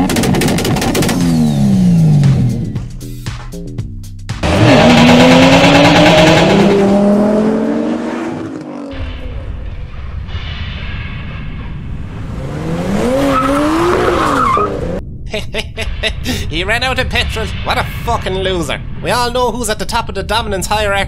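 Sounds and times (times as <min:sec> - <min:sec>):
car engine revving: 0:04.4 - 0:09.3, 0:12.1 - 0:15.0
tyre screech: 0:12.4 - 0:15.0.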